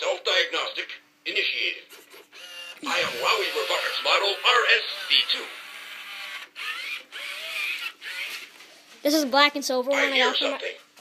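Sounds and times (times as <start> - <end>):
toy robot gear motors whirring: 2.0 - 8.5.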